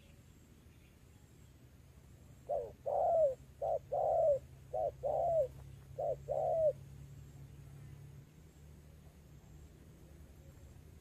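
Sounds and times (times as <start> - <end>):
dove cooing: 2.4 - 6.8.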